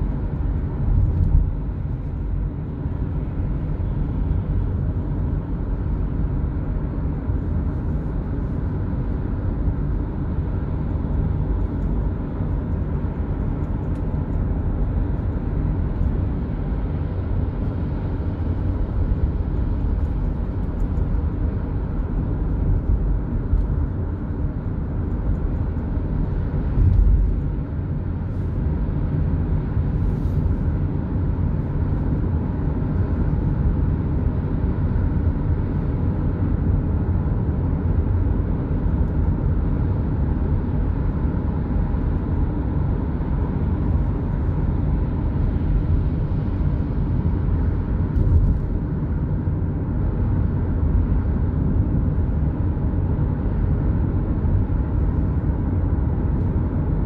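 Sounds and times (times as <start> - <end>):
car tyre and road noise: 0.0 - 57.0.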